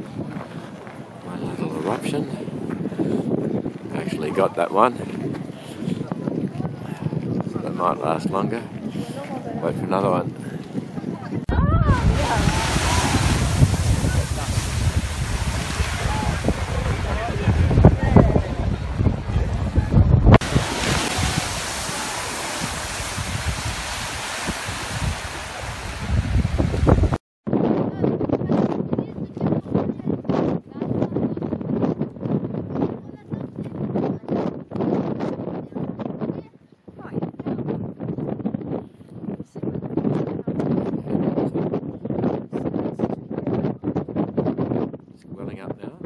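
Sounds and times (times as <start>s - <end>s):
wind buffeting microphone: 0.0s - 46.0s
geyser rushing hiss: 12.0s - 17.9s, 20.4s - 27.2s.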